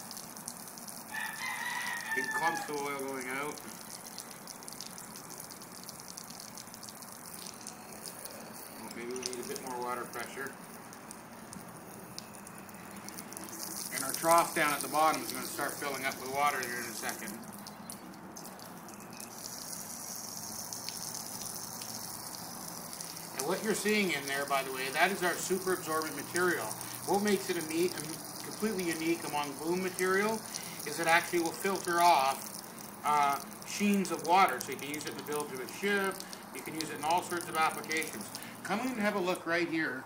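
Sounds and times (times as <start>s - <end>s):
garden hose spraying water: 0.0s - 40.0s
rooster crowing: 1.1s - 2.9s.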